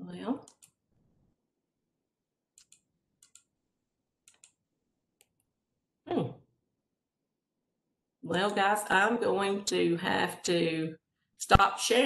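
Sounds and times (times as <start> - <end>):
computer mouse clicks: 0.4 - 0.8, 2.6 - 3.5, 4.2 - 4.6.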